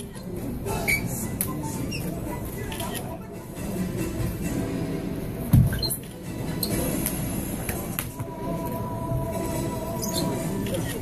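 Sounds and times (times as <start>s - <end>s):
shoes squeaking on wooden floor: 5.6s - 6.0s.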